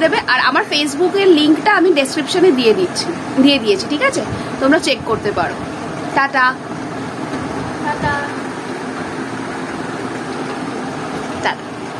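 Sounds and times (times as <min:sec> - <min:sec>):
low mechanical hum: 0:00.0 - 0:11.9.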